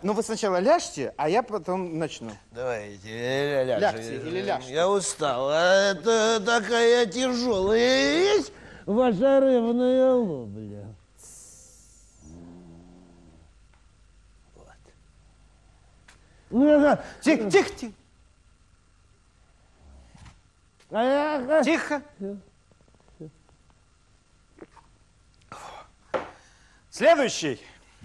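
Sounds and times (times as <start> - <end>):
faint high hiss: 0.0 - 28.0
man humming low: 11.2 - 13.5.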